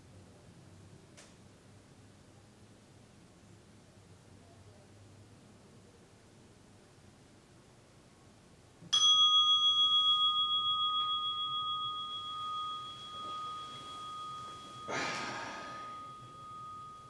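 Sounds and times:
meditation bell ringing: 0:09.0 - 0:17.0.

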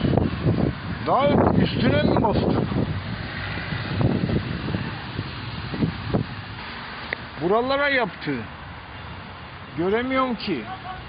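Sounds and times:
wind rumbling on microphone: 0:00.0 - 0:09.9
microphone handling noise: 0:01.4 - 0:07.3.

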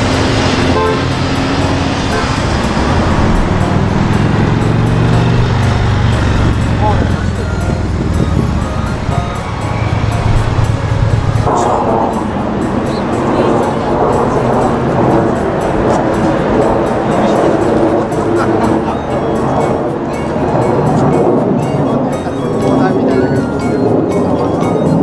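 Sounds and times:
background music: 0:00.0 - 0:25.0
road traffic: 0:00.0 - 0:25.0.

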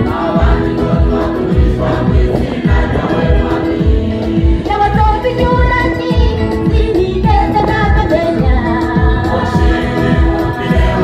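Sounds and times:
choir singing gospel in harmony: 0:00.0 - 0:05.0, 0:07.6 - 0:11.0
steady beat: 0:00.0 - 0:11.0.

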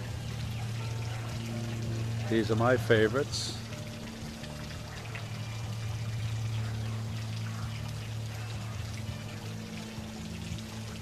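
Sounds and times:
low steady hum: 0:00.0 - 0:11.0
water pouring and trickling: 0:00.0 - 0:11.0.

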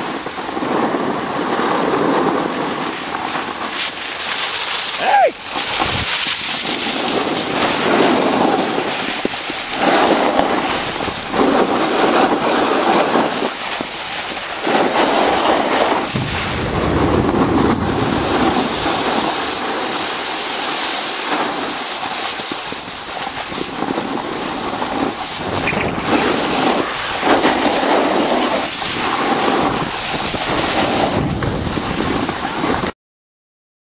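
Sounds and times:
skis scraping over snow: 0:00.0 - 0:32.9
wind rumble on microphone: 0:00.0 - 0:32.9.

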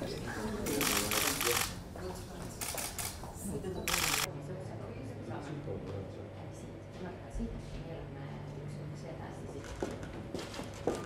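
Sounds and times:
camera shutters firing in bursts: 0:00.6 - 0:01.8, 0:02.6 - 0:03.3, 0:03.9 - 0:04.3.

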